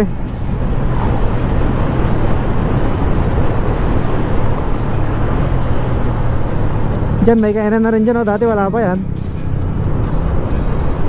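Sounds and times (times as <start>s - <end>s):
motorcycle engine hum: 0.0s - 11.0s.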